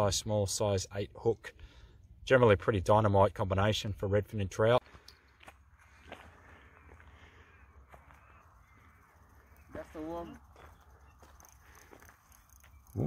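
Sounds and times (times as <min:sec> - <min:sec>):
distant crow caws: 0:05.8 - 0:12.7.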